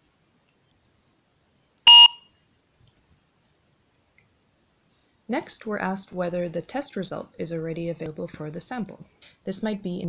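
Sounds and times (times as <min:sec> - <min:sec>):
barcode scanner beep: 0:01.9 - 0:02.3.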